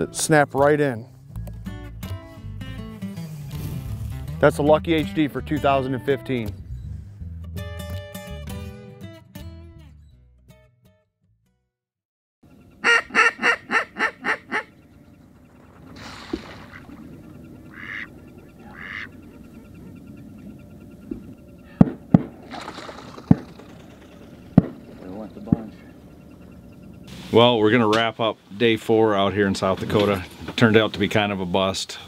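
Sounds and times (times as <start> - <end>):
faint outdoor noise: 12.4 - 32.0
mallard quacking: 12.8 - 15.0, 15.8 - 23.4
sharp knocks: 21.8 - 25.9.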